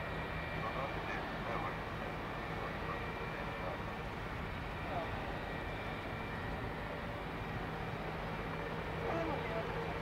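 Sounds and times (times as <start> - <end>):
helicopter turbine whine and rotor: 0.0 - 10.0.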